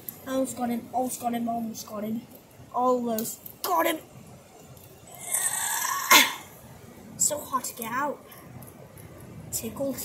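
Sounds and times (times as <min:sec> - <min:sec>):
person straining groan: 0:05.1 - 0:06.5.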